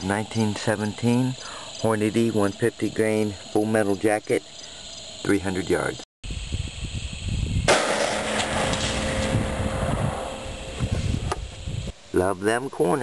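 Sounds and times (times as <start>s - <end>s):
rifle shot: 7.7s - 10.9s.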